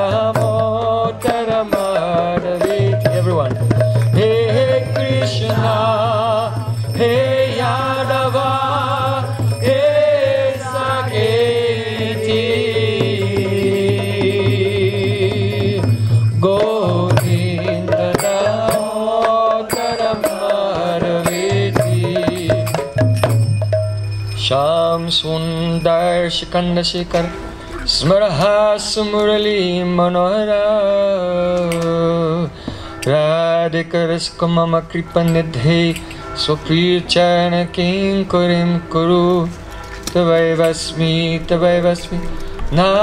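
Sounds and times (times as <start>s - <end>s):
light percussive strikes: 0.0s - 25.0s
hand drum strokes: 0.3s - 5.9s, 6.5s - 24.6s.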